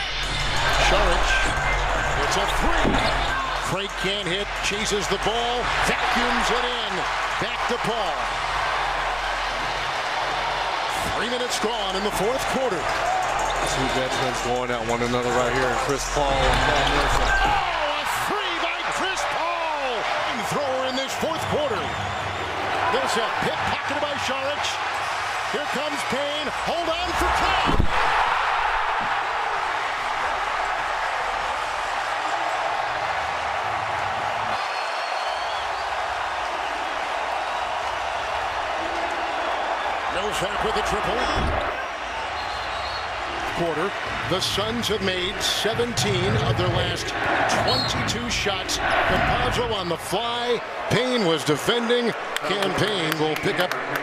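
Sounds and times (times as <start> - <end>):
crowd cheering: 0.0 - 54.0.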